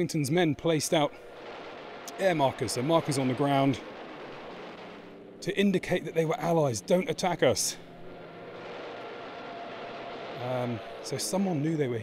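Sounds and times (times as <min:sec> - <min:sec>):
distant engine drone: 0:00.7 - 0:12.0.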